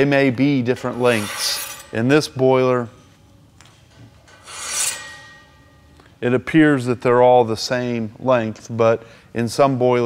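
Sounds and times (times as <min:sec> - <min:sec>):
metal strip scraping inside steel tube: 0:00.8 - 0:02.1, 0:04.3 - 0:05.8.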